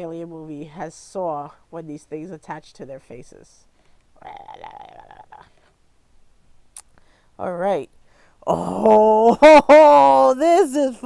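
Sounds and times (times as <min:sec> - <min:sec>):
woman making wordless sound: 0:04.2 - 0:05.7, 0:08.4 - 0:11.0.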